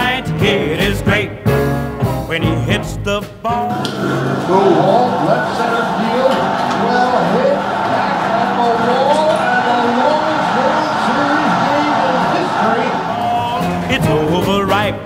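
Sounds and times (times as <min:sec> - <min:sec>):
background music: 0:00.0 - 0:15.0
crowd noise: 0:03.5 - 0:15.0.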